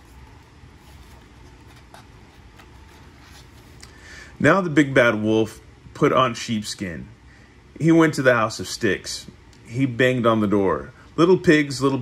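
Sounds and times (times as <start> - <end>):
book page turning: 0.0 - 3.8
low room noise: 0.0 - 12.0.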